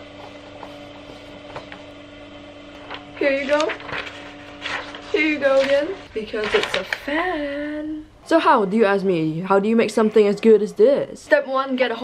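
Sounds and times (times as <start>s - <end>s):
steady low hum: 0.0s - 12.0s
paper sheets riffled by hand: 2.8s - 7.7s.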